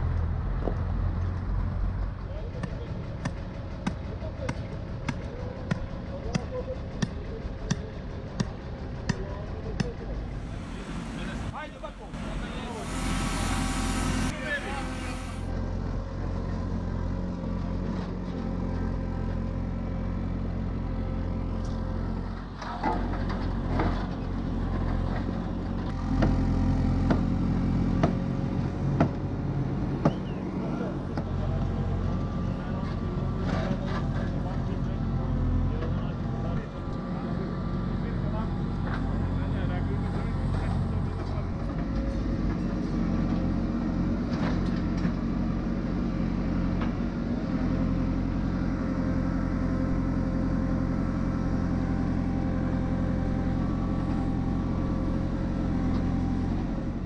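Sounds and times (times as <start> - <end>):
diesel engine running: 0.0 - 57.0.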